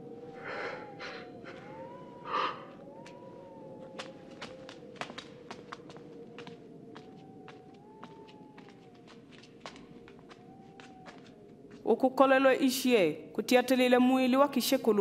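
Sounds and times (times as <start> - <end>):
light uneven footsteps: 0.0 - 12.1
breathy sighs: 0.4 - 2.8.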